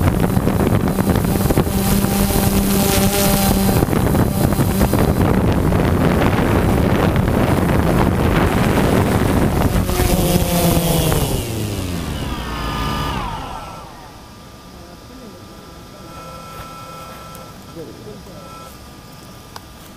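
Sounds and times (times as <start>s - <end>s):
wind noise on microphone: 0.0s - 14.3s
small propeller motors: 0.0s - 19.9s.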